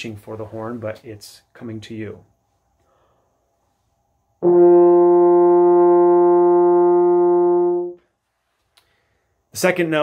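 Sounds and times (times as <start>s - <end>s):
french horn steady note: 4.4s - 8.1s.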